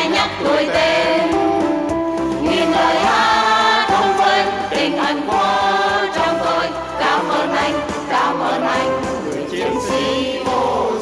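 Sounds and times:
choir singing: 0:00.0 - 0:01.7, 0:02.4 - 0:11.0
instrumental accompaniment: 0:00.0 - 0:11.0.

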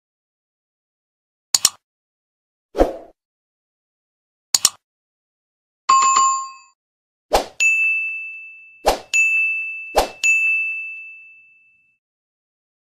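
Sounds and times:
bell-like notification ding: 0:07.6 - 0:12.0.

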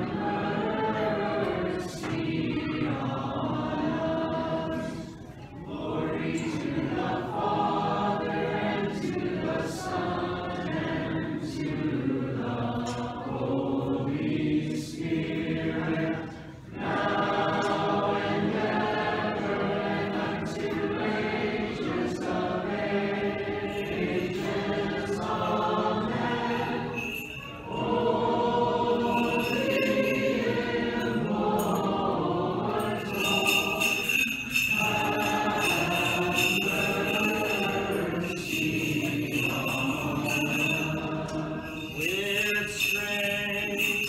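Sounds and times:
church choir singing a hymn: 0:00.0 - 0:44.0.

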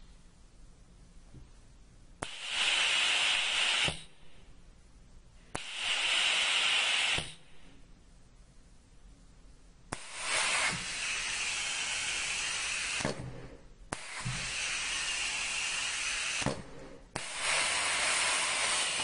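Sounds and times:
air valve click: 0:02.2 - 0:04.1, 0:05.5 - 0:07.5, 0:09.9 - 0:13.3, 0:13.9 - 0:19.0
compressed air hissing: 0:02.2 - 0:04.2, 0:05.5 - 0:07.6, 0:09.9 - 0:19.0.

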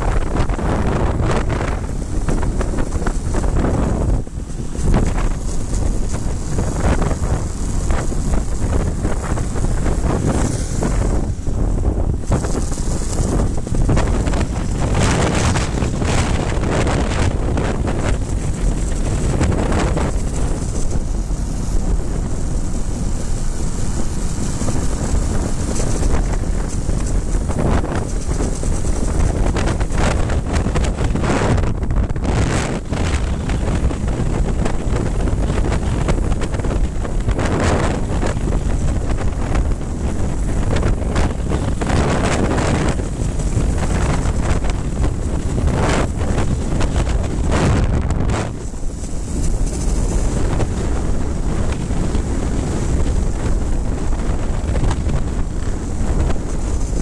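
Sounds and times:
motorcycle engine running: 0:00.0 - 0:57.0
wind buffeting microphone: 0:00.0 - 0:57.0.

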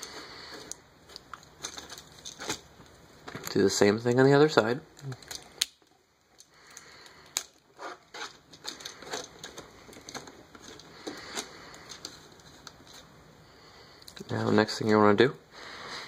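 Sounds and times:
plastic parts clicking and rubbing: 0:00.0 - 0:03.6, 0:04.9 - 0:13.1.

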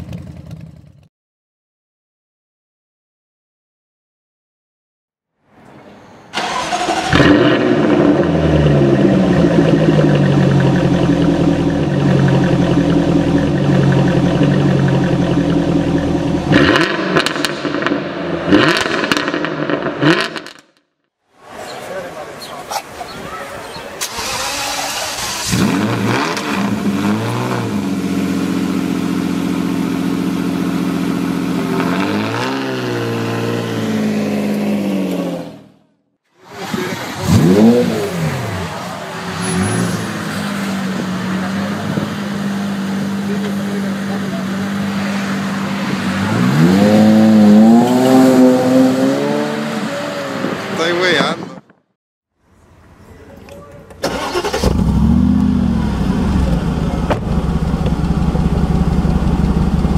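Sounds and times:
car engine starting and revving: 0:06.3 - 0:20.6, 0:24.0 - 0:35.7, 0:36.4 - 0:51.6, 0:54.0 - 0:59.9
car engine idling: 0:08.1 - 0:16.5, 0:27.8 - 0:31.6, 0:54.1 - 0:59.9.

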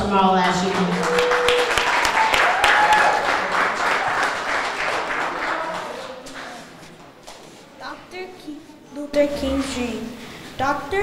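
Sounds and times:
audience applauding: 0:00.0 - 0:06.9.

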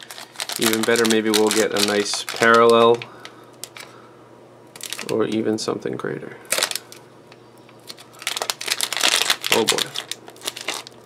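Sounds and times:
plastic wrapper crinkling and tearing: 0:00.0 - 0:04.0, 0:04.7 - 0:05.4, 0:06.4 - 0:07.0, 0:07.8 - 0:11.0.

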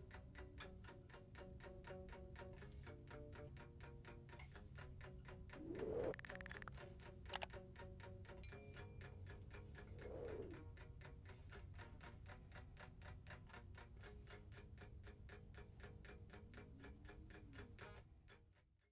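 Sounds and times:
faint rapid ticking: 0:00.0 - 0:18.6.

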